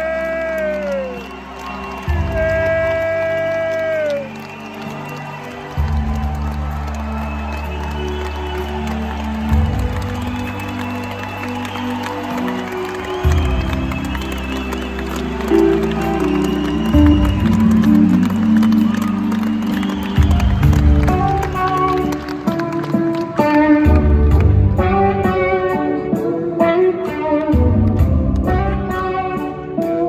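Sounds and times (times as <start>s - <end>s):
crowd cheering: 0.0s - 24.6s.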